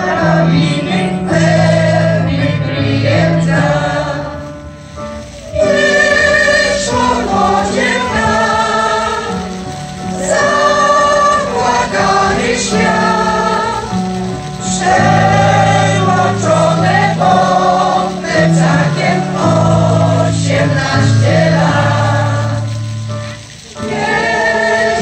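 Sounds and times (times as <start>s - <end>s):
choir singing: 0.0s - 4.5s, 5.4s - 22.8s, 23.6s - 25.0s
electronic keyboard accompaniment: 0.0s - 25.0s.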